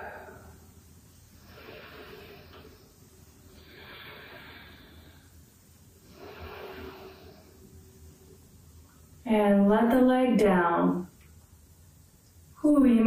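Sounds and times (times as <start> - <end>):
woman breathing softly: 1.3 - 8.0.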